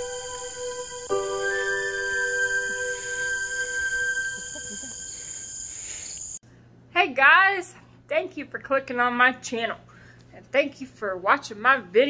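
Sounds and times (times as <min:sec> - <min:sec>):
soft music notes: 0:00.0 - 0:04.8
high-pitched insect chorus: 0:00.0 - 0:06.4.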